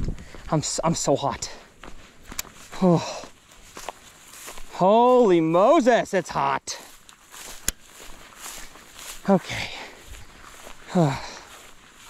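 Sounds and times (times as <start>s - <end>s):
footsteps through tall grass: 0.0s - 12.0s.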